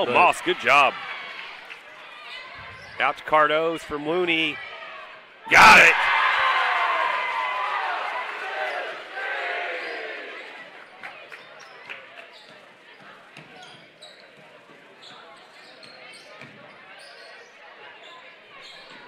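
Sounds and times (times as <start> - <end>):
crowd voices: 4.0 - 19.0.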